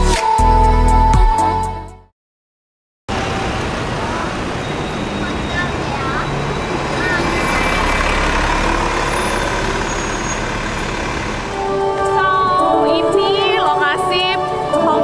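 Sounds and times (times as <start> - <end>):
bus running close by: 3.1 - 15.0
rumble of traffic: 3.1 - 15.0.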